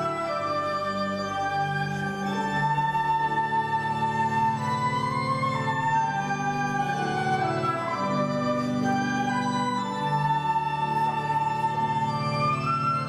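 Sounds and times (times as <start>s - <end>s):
slow organ music: 0.0s - 13.0s.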